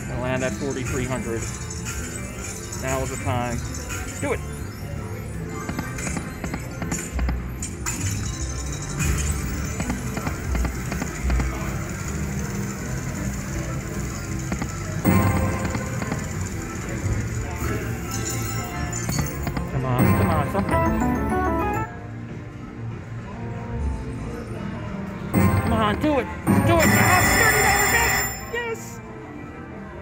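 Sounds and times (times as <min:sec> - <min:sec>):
slot machine music and effects: 0:00.0 - 0:22.2, 0:25.3 - 0:29.1
casino background voices: 0:09.1 - 0:21.9, 0:25.4 - 0:29.0.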